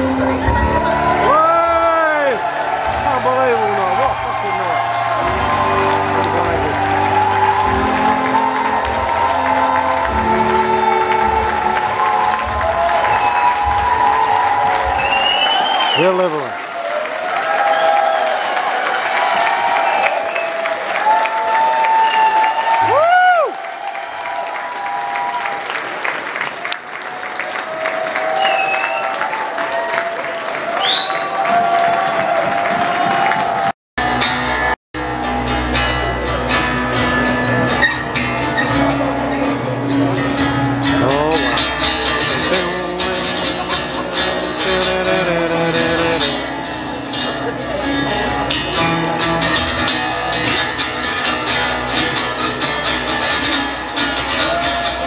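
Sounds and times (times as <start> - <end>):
live band music through pa: 0.0 - 16.4, 34.0 - 55.0
crowd voices: 0.0 - 23.3, 25.6 - 55.0
applause: 0.2 - 34.8, 41.0 - 55.0.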